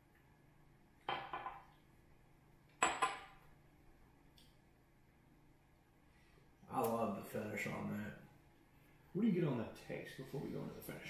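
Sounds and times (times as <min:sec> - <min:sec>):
glass clinking on stone countertop: 0:01.1 - 0:01.8, 0:02.8 - 0:03.4.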